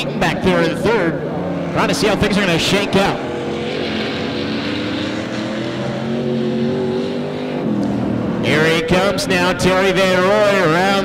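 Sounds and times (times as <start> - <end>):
race car engines running: 0.0 - 11.0.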